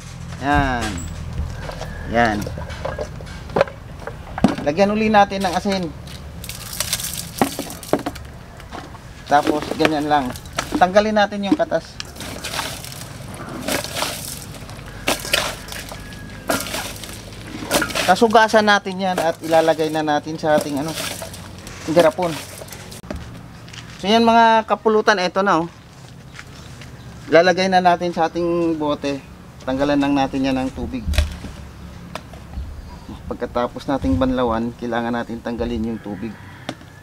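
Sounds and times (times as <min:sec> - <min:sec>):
low rumble: 0:00.0 - 0:04.4
wet squeezing by hand: 0:06.0 - 0:08.0, 0:12.0 - 0:18.2.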